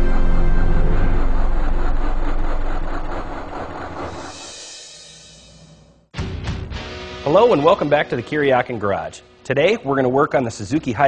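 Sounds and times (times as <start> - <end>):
loud engine-like rumble: 0.0 - 5.4.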